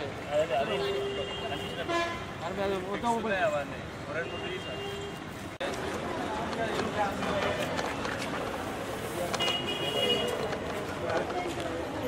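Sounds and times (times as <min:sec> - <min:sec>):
street and traffic noise: 0:00.0 - 0:12.0.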